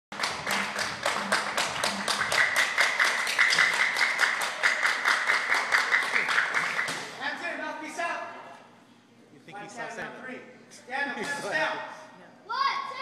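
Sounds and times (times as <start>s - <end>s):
group clapping hands: 0.1s - 7.2s.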